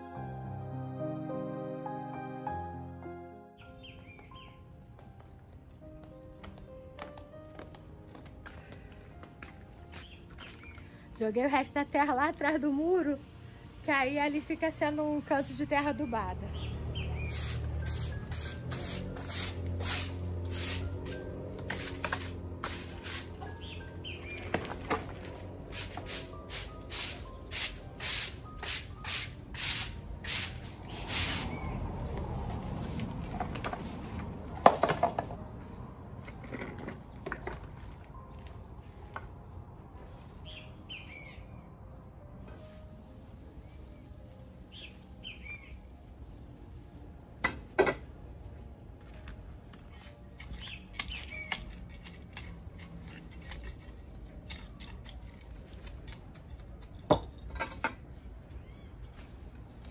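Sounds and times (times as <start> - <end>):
broom sweeping soil on paving: 16.4 - 24.4, 25.1 - 34.3, 42.6 - 47.3, 58.5 - 59.9.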